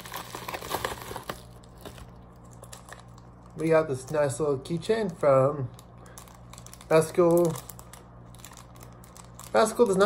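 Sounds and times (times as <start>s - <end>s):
bubble wrap crinkling: 0.0s - 4.3s, 5.0s - 10.0s.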